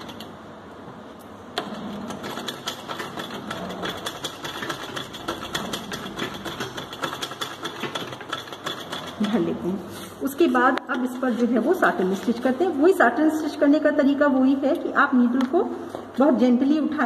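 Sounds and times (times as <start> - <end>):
sewing machine stitching: 1.6 - 9.6.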